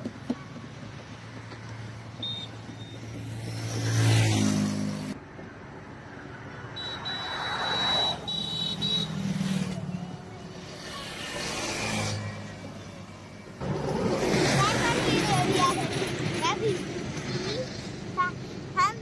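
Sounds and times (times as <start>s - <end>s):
vehicles passing close by: 0.0s - 19.0s.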